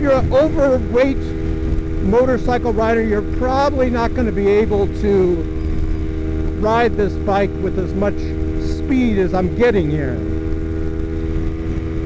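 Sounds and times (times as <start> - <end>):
low rumble: 0.0 - 12.0
motorcycle engine cruising: 0.0 - 12.0.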